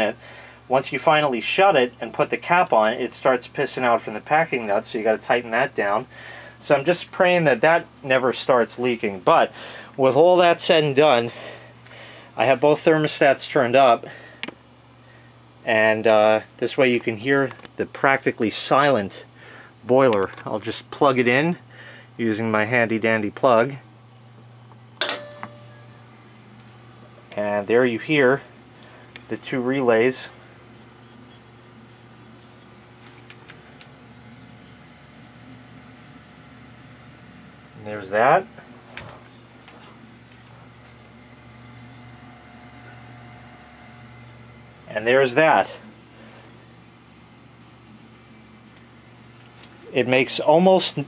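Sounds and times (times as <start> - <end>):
low steady hum: 0.0 - 51.0
short ringing tone: 25.0 - 26.2.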